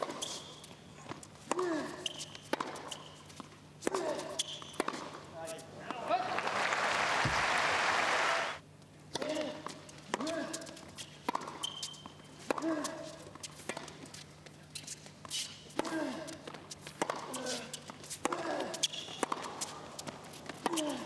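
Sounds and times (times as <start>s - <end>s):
tennis ball hitting rackets: 1.4s - 5.2s, 10.1s - 14.0s, 15.7s - 21.0s
ball bouncing on hard court: 2.5s - 3.0s, 18.2s - 21.0s.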